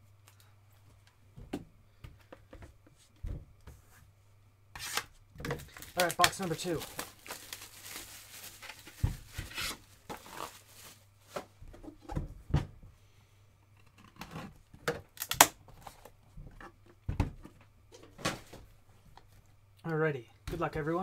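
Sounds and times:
packaging rustling and tearing: 0:04.8 - 0:11.1.

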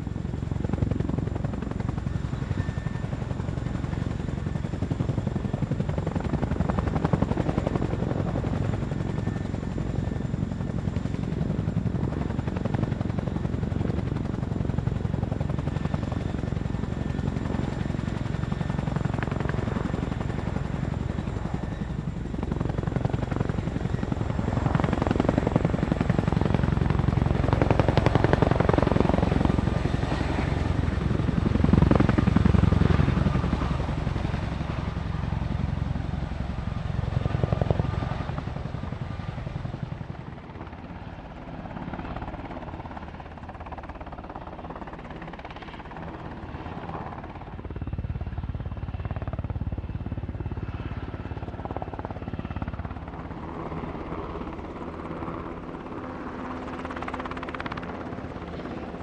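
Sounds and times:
tandem helicopter rotors: 0:00.0 - 0:59.0.

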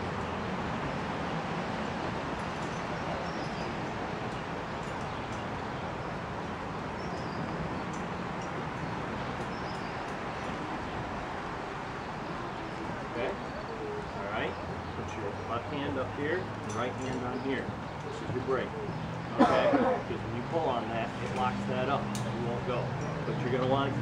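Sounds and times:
outdoor background noise: 0:00.0 - 0:24.0.

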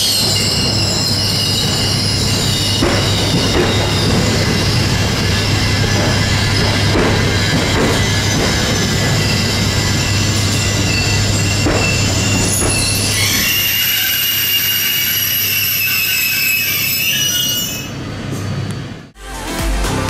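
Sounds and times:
electric train humming and rushing: 0:00.0 - 0:20.0.

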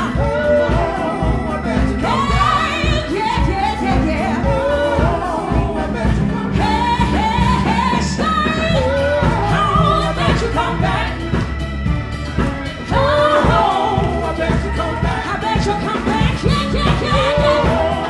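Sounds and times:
woman singing: 0:00.0 - 0:11.1, 0:12.9 - 0:18.0
live band playing: 0:00.0 - 0:18.0.

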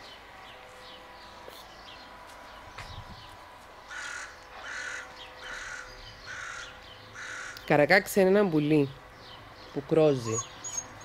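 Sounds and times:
magpie harsh chatter calls: 0:03.9 - 0:08.0, 0:10.1 - 0:11.0.

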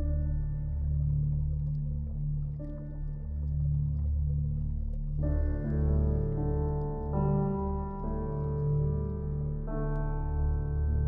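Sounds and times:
ambient relaxation music: 0:00.0 - 0:11.0.

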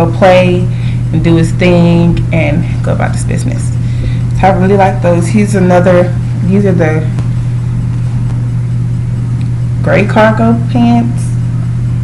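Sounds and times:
woman speaking: 0:00.0 - 0:03.8, 0:04.4 - 0:07.2, 0:09.8 - 0:11.4
steady low hum: 0:00.0 - 0:12.0.

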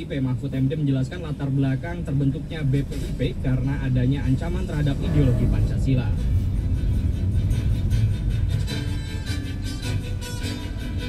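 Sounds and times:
car driving rumble: 0:00.0 - 0:11.0
music from car radio: 0:00.0 - 0:11.0.

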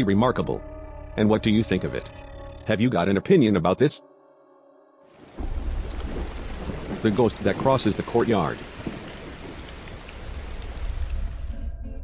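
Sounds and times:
steady rain: 0:05.1 - 0:11.7
thunder rumble: 0:05.2 - 0:11.8.

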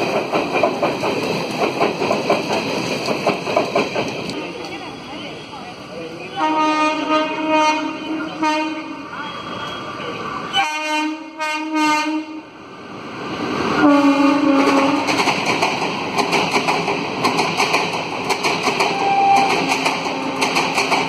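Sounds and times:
passing train rumble and clatter: 0:00.0 - 0:21.0
locomotive horn blasts: 0:06.4 - 0:09.1, 0:10.5 - 0:12.4, 0:13.8 - 0:15.1.

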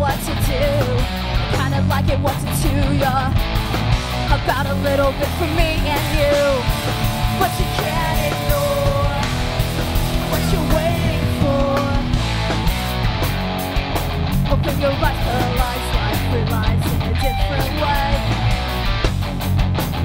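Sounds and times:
bass guitar: 0:00.0 - 0:20.0
drums: 0:00.0 - 0:20.0
electric guitars: 0:00.0 - 0:20.0.

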